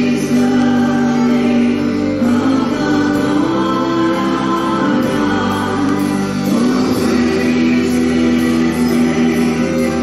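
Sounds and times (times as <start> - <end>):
choir singing worship song: 0.0 - 10.0.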